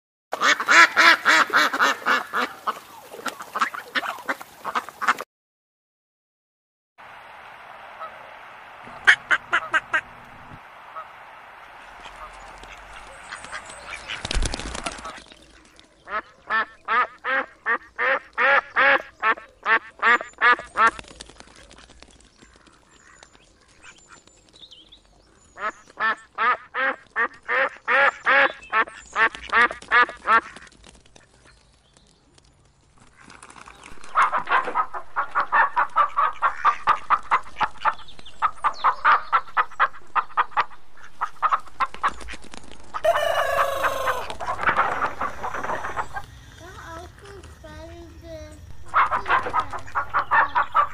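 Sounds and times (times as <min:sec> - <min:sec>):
ducks quacking: 0:00.4 - 0:05.2, 0:07.8 - 0:21.9, 0:25.3 - 0:31.5, 0:34.0 - 0:50.9
steady hiss: 0:07.0 - 0:14.4, 0:45.3 - 0:48.9
goose honks: 0:08.9 - 0:11.2, 0:43.0 - 0:46.2, 0:48.8 - 0:50.9.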